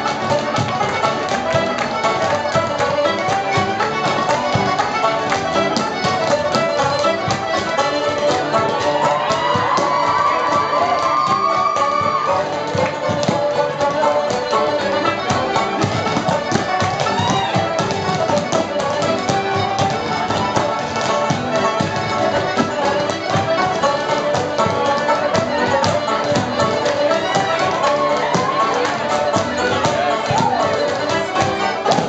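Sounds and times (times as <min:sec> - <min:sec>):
accordion and banjo dance music: 0:00.0 - 0:32.0
hard-soled dance steps tapping: 0:00.0 - 0:32.0.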